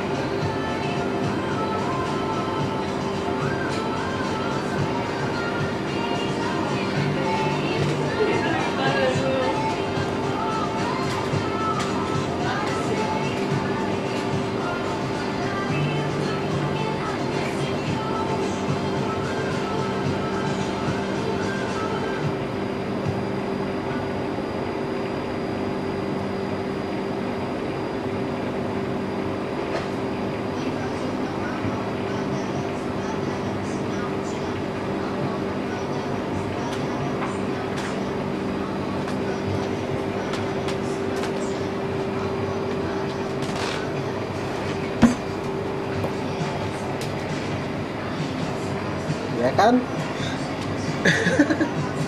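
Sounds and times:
constant background noise: 0.0s - 52.0s
steady mechanical hum: 0.0s - 52.0s.

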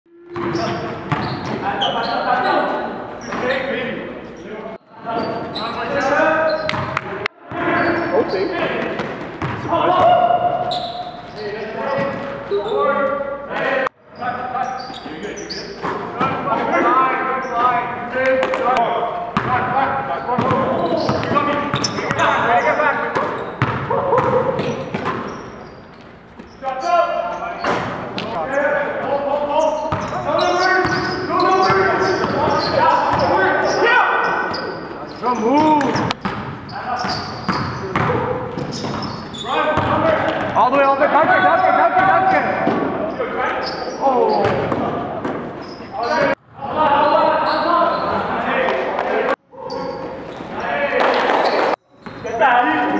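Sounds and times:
basketball bouncing on gym floor: 0.3s - 1.6s, 6.6s - 7.7s, 8.8s - 10.2s, 23.1s - 25.4s, 35.6s - 39.1s, 39.7s - 41.5s
players' voices: 0.4s - 25.8s, 26.4s - 52.9s.

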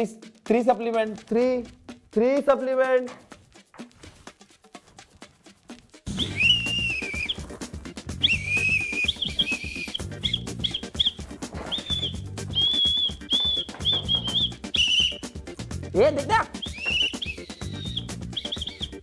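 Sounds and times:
background music with steady beat: 0.0s - 19.0s
high whistle notes: 6.1s - 7.5s, 8.1s - 15.4s, 16.6s - 19.0s.

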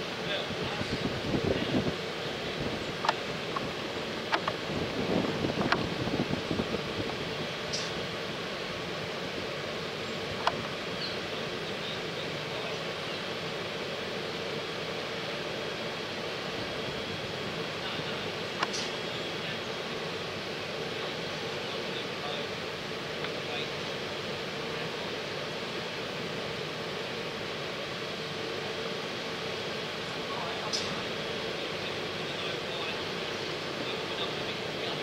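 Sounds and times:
machinery hum: 0.0s - 35.0s
wind on microphone: 0.5s - 8.2s.

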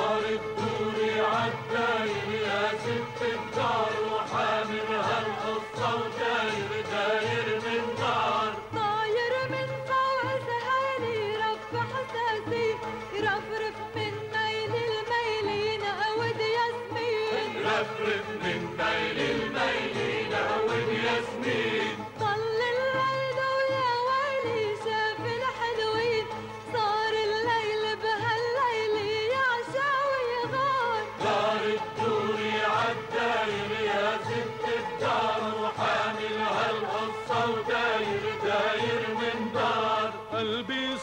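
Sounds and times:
chorus singing: 0.0s - 11.8s, 16.9s - 25.5s, 29.5s - 41.0s
instrumental accompaniment: 0.0s - 41.0s
musical backing: 0.0s - 41.0s.

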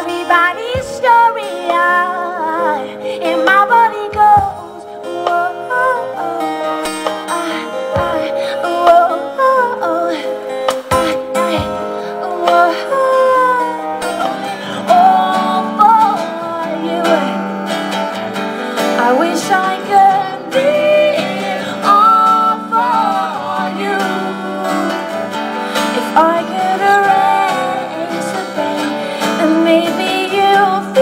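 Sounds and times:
strummed guitar chords: 0.0s - 31.0s
woman singing into a microphone: 0.0s - 31.0s.

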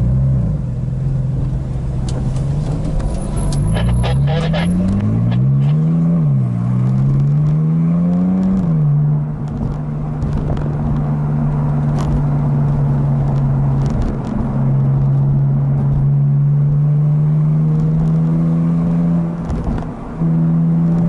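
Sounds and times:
car engine revving and shifting: 0.0s - 21.0s.

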